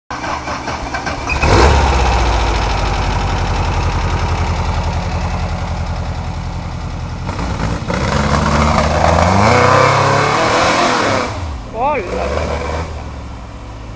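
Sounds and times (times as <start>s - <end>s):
buggy engine revving: 0.1s - 13.5s.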